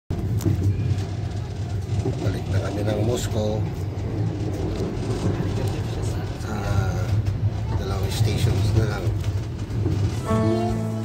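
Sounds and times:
train rumble: 0:00.1 - 0:11.0.

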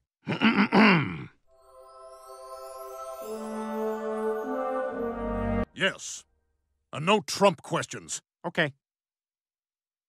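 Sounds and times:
man clearing his throat: 0:00.2 - 0:01.4
soft sustained musical chord: 0:01.5 - 0:05.7.

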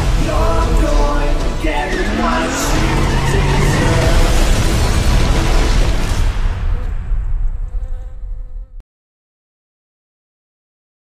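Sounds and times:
low rumble: 0:00.0 - 0:08.8.

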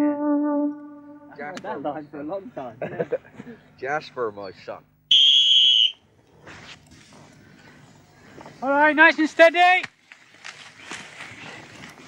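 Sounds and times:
dry stalks rustling and crackling: 0:09.2 - 0:12.0.

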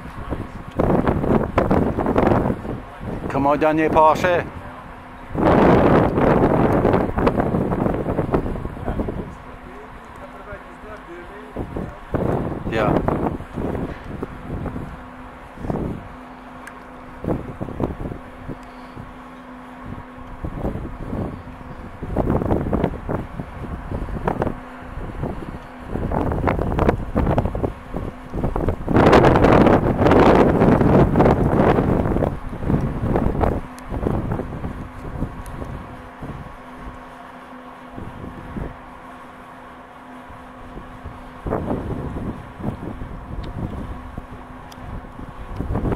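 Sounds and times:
wind buffeting microphone: 0:00.0 - 0:37.0, 0:38.0 - 0:38.9, 0:40.3 - 0:45.9.

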